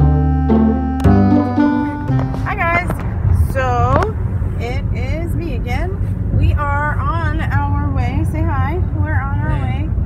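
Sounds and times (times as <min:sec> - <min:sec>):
car cabin rumble: 0:01.0 - 0:10.0
woman talking: 0:02.5 - 0:10.0.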